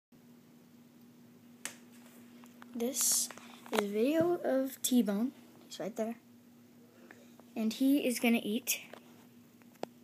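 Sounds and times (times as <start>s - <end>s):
faint steady hum: 0.2s - 10.0s.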